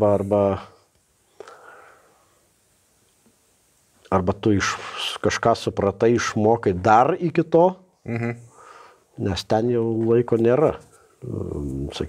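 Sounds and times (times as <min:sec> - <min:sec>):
faint breath: 0:01.3 - 0:02.5, 0:08.5 - 0:09.1.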